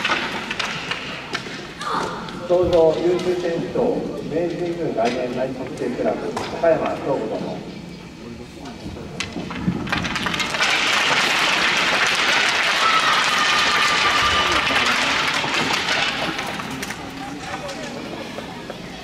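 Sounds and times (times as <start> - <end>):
applause: 10.4 - 16.6.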